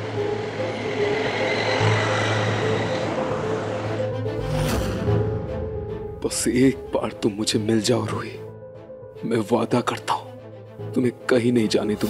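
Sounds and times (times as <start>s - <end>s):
tense background music: 0.0s - 12.0s.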